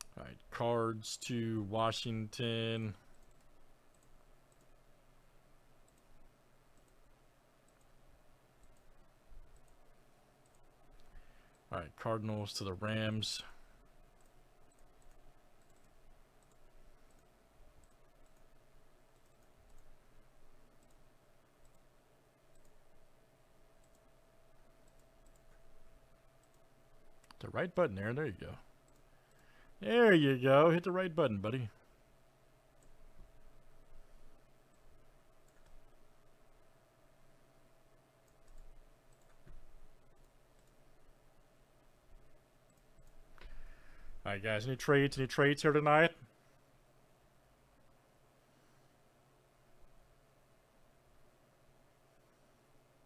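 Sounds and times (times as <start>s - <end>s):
low steady hum: 0.0s - 53.0s
computer mouse clicks: 3.1s - 4.8s, 5.8s - 8.0s, 8.6s - 11.7s, 14.1s - 20.0s, 20.7s - 21.9s, 22.5s - 22.8s, 23.8s - 24.1s, 24.8s - 25.8s, 26.4s - 27.4s, 28.8s - 29.6s, 32.8s - 33.0s, 34.7s - 36.0s, 38.2s - 40.8s, 42.6s - 43.8s.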